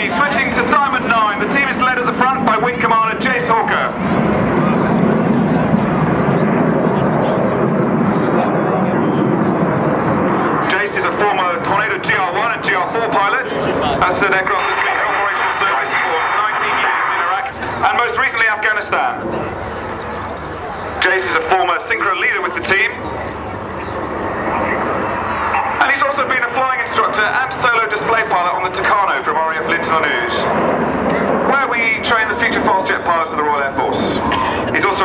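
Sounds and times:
jet engines roaring overhead: 0.0s - 35.0s
voices talking: 0.0s - 35.0s.

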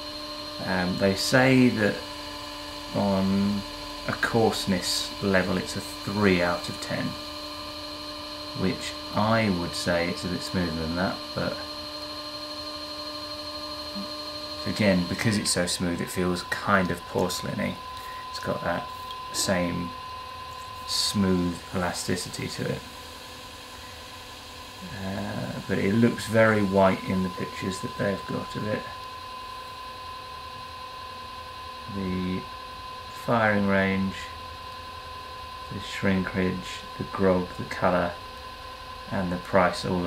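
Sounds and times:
pottery wheel motor whine: 0.0s - 40.0s.

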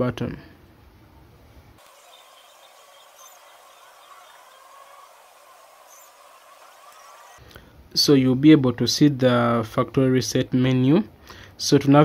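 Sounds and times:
faint high chirps: 1.8s - 7.4s
thin hissy background ambience: 1.8s - 7.4s.

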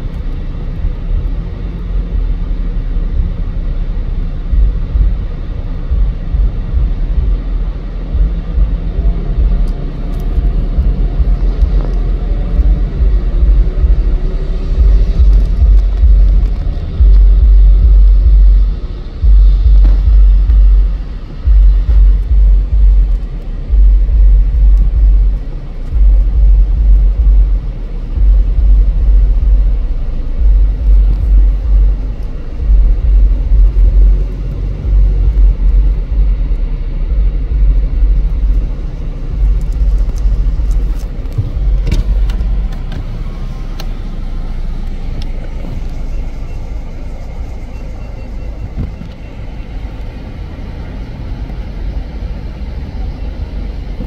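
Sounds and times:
car road noise: 0.0s - 54.0s
loud low rumble: 0.0s - 54.0s.

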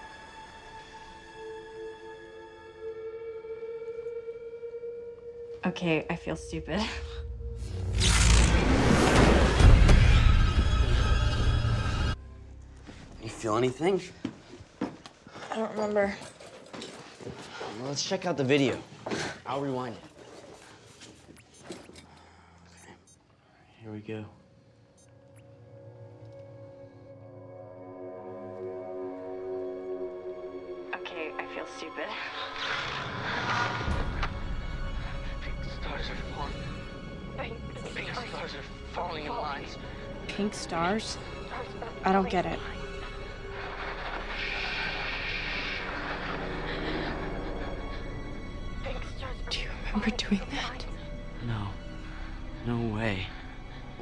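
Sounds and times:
ominous background music drone: 0.0s - 13.9s, 23.9s - 54.0s
hissing shimmer: 42.6s - 48.9s.

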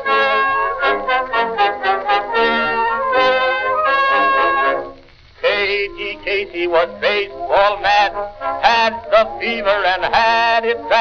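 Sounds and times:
brass-led orchestra playing: 0.0s - 5.0s, 8.0s - 8.9s.

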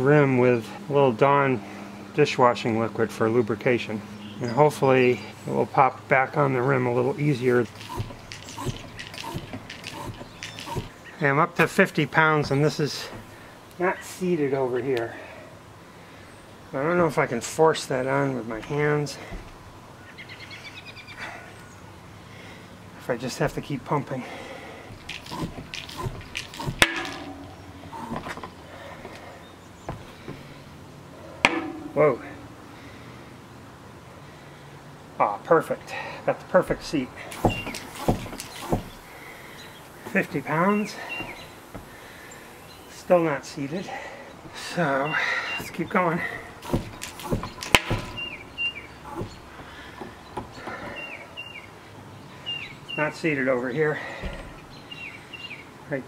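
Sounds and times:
bird chirping: 4.1s - 5.4s, 7.2s - 11.7s, 19.9s - 22.8s, 36.7s - 43.2s, 44.2s - 55.8s
floor pump air hissing: 7.7s - 10.9s, 24.9s - 26.8s, 37.3s - 42.0s, 46.5s - 48.4s
sharp knocks: 7.8s - 10.9s, 25.0s - 28.5s, 31.4s - 32.0s, 36.7s - 39.0s, 46.6s - 48.4s.

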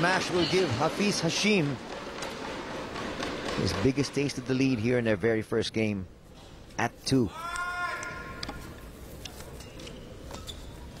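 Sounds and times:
indoor badminton hall background: 0.0s - 5.2s, 6.0s - 11.0s.

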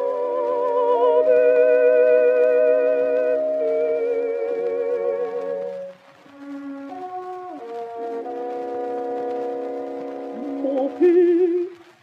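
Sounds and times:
contralto singing: 0.0s - 11.9s
record surface hiss: 0.0s - 12.0s
wind instruments holding notes: 0.0s - 12.0s.

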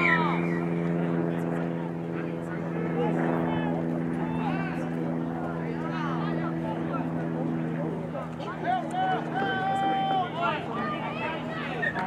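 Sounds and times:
players and spectators shouting: 0.0s - 0.8s, 3.4s - 5.0s, 8.4s - 12.0s
low engine hum: 0.0s - 12.0s.

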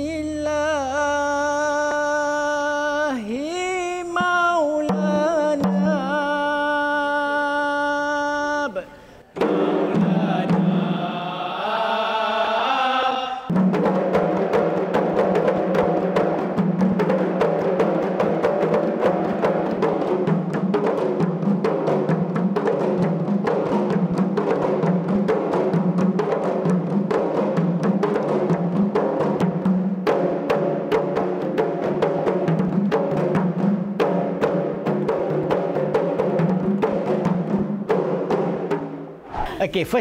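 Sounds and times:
person chanting melodically: 0.0s - 13.5s
hand-beaten frame drums: 4.2s - 6.3s, 9.3s - 11.2s, 13.5s - 39.6s.

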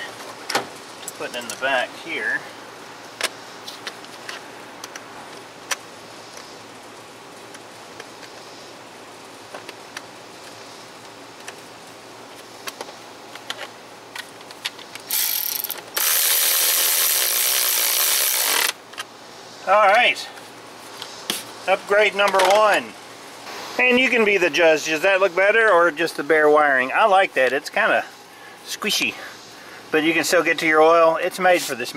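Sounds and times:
cordless electric ratchet running: 15.1s - 18.8s.

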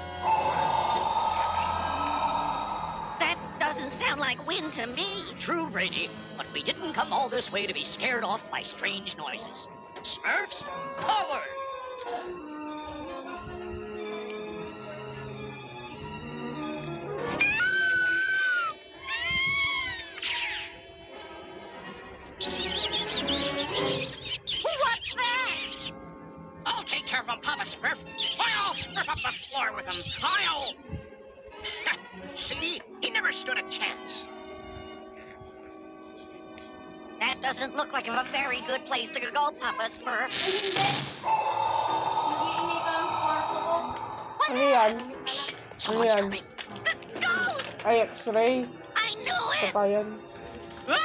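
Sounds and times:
eerie high tone over hiss: 0.0s - 5.0s, 40.3s - 45.3s
cartoon background music: 0.0s - 51.0s.

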